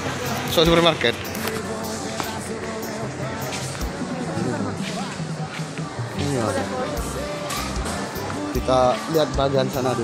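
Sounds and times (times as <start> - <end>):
background music: 0.0 - 10.0
voices: 0.0 - 10.0.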